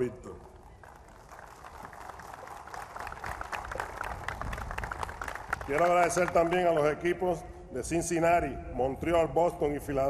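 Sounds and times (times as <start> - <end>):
audience applauding: 0.7 - 6.6.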